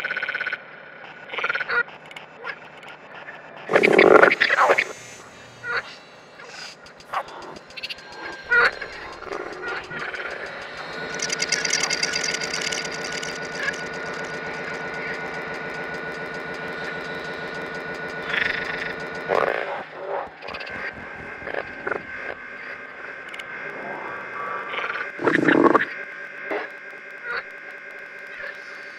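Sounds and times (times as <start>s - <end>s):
processed frog croaks and clicks: 0.0s - 23.8s, 24.4s - 28.9s
dense buzzing drone: 0.0s - 28.9s.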